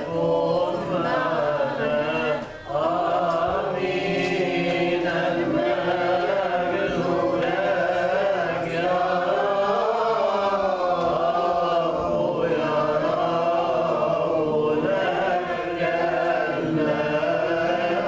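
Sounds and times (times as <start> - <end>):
group chanting liturgical chant: 0.0 - 18.0.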